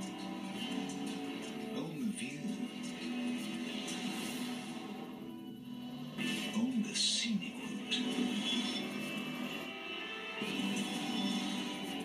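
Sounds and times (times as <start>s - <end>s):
commercial music from tv speaker: 0.0s - 12.0s.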